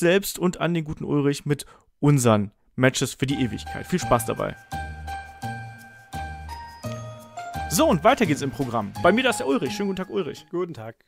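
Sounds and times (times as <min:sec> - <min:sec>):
short musical jingle: 0:03.3 - 0:10.4.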